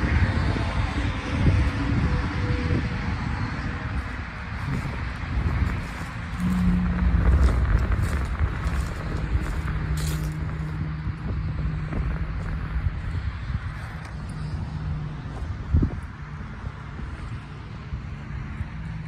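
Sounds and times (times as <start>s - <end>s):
highway traffic rumble: 0.0s - 19.0s.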